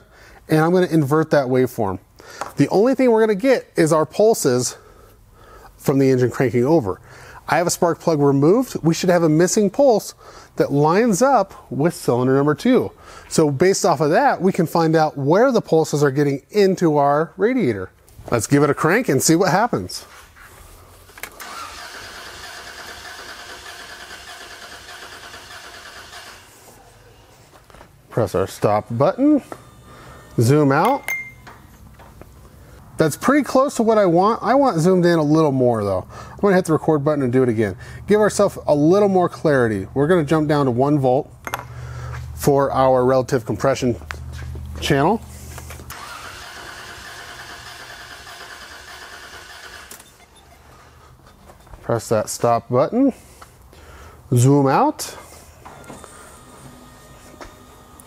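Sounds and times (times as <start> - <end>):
engine cranking on starter: 21.2 - 26.8, 45.9 - 50.3.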